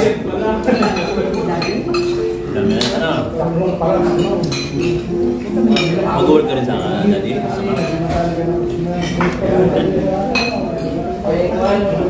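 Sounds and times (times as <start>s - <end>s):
diners talking: 0.0s - 12.0s
tableware clinking: 0.0s - 12.0s.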